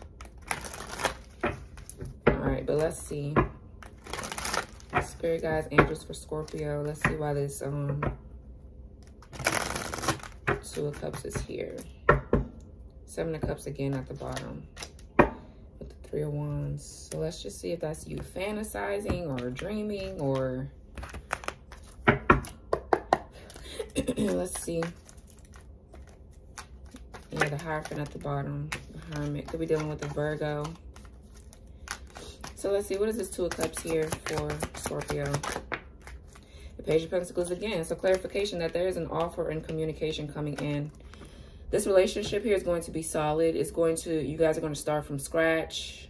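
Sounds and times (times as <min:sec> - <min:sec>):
cards rustling: 0:00.1 - 0:02.0, 0:03.8 - 0:05.1, 0:09.0 - 0:11.3, 0:19.0 - 0:22.6, 0:23.3 - 0:36.6
cards clicking and slapping: 0:20.9 - 0:23.6, 0:24.2 - 0:36.4.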